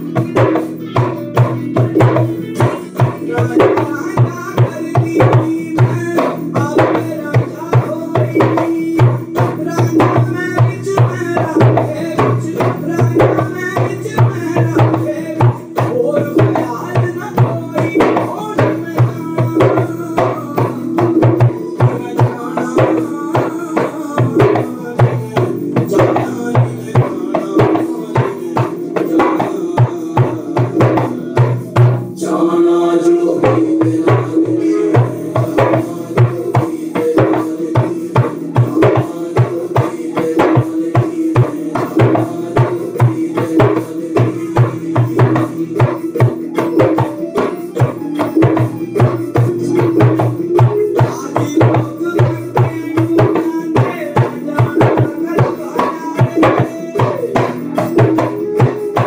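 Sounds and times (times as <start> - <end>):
djembe played by hand: 0.0 - 32.4, 33.0 - 59.0.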